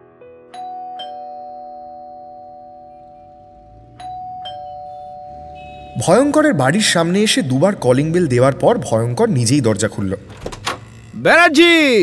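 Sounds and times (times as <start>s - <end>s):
doorbell ding-dong chime: 0.5s - 5.9s.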